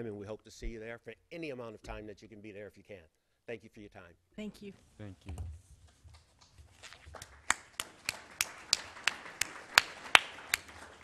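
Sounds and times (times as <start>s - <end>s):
hand clapping: 6.4s - 11.0s.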